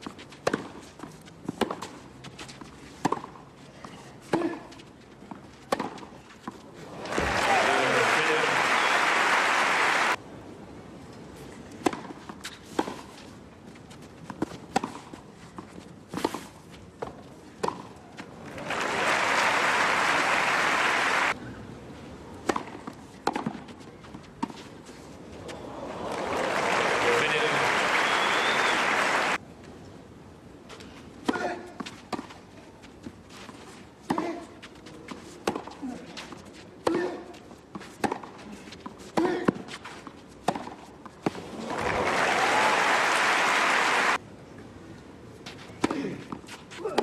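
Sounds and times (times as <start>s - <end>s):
tennis ball bouncing: 0.0s - 2.0s, 2.6s - 3.4s, 5.3s - 6.6s, 11.8s - 13.0s, 17.0s - 18.0s, 22.4s - 24.7s, 37.8s - 39.7s, 40.4s - 41.9s
racket striking tennis ball: 5.7s - 6.1s, 22.4s - 23.7s, 34.1s - 34.4s, 38.0s - 38.3s, 40.4s - 41.9s.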